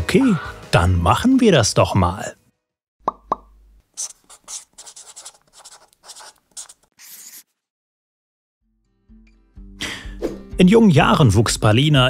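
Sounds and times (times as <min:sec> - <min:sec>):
scratchy pen-like strokes: 0:04.0 - 0:07.6.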